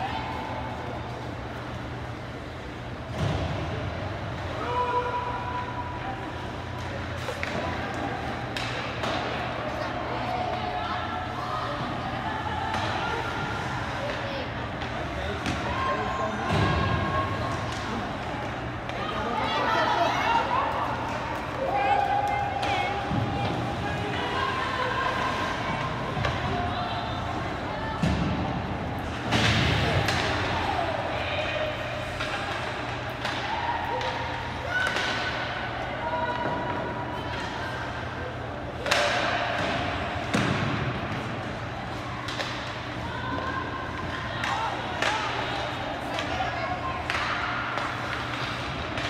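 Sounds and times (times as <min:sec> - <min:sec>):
puck and sticks hitting boards: 0:06.7 - 0:09.8, 0:12.7 - 0:15.8, 0:28.0 - 0:38.0, 0:38.6 - 0:49.0.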